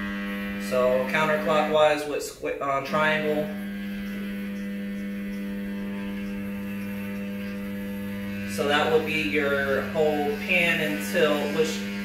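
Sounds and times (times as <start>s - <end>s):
lower hum: 0.0s - 12.0s
stepper motor humming: 0.0s - 12.0s.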